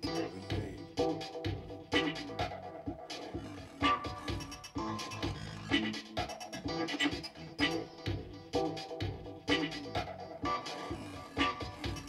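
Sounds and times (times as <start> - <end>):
electronic music with plucked stabs: 0.0 - 12.0
low bass: 0.0 - 12.0.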